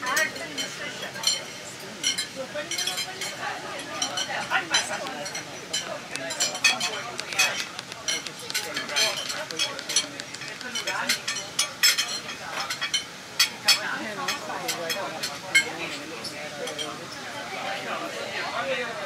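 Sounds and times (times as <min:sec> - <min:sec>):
passengers conversing: 0:00.0 - 0:19.0
sharp clicks and clinks: 0:04.0 - 0:13.1.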